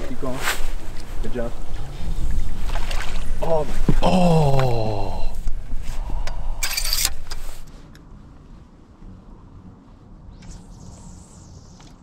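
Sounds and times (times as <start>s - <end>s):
outdoor background: 0.0s - 12.0s
water splashing: 1.7s - 3.6s.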